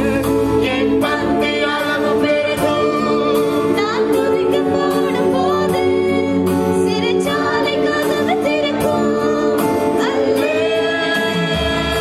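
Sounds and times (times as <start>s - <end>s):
electronic keyboard accompaniment: 0.0s - 12.0s
woman singing into a microphone: 0.6s - 12.0s.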